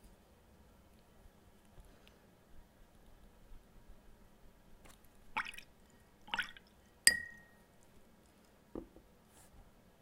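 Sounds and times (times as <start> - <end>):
brush tapping glass rim: 7.1 - 7.6.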